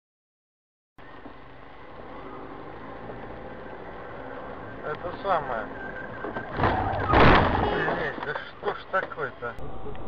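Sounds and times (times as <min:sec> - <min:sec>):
car engine hum: 0:01.0 - 0:10.0
road noise inside car: 0:01.0 - 0:10.0.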